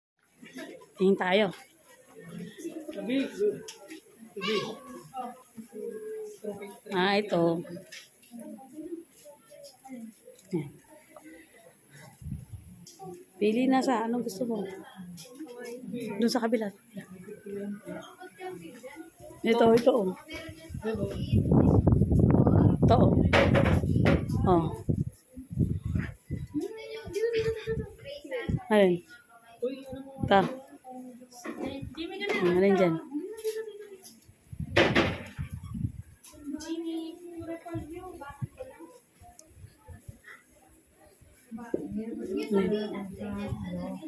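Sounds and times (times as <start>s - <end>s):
people talking indistinctly: 0.4s - 44.0s.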